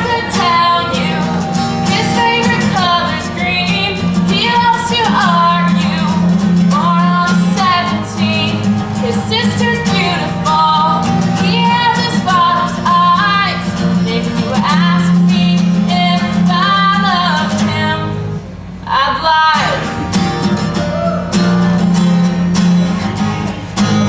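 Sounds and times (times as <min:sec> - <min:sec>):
woman singing slow song: 0:00.0 - 0:19.9
strummed acoustic guitar: 0:00.0 - 0:24.0.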